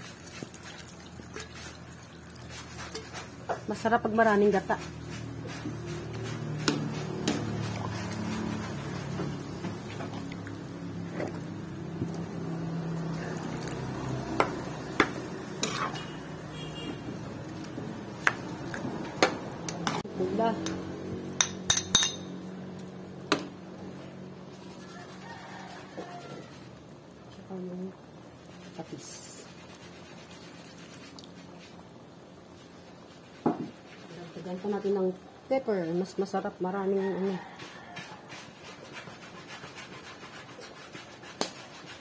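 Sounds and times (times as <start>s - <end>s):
metal spatula scraping a wok: 2.4s - 3.5s, 4.4s - 9.6s, 14.0s - 17.1s.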